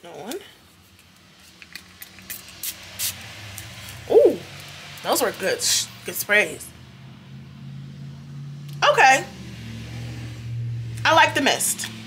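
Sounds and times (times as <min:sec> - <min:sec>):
woman's voice: 0:08.8 - 0:09.3, 0:11.0 - 0:12.0.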